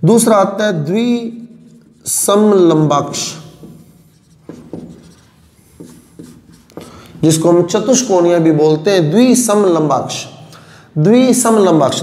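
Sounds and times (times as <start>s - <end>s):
writing strokes: 1.0s - 7.2s.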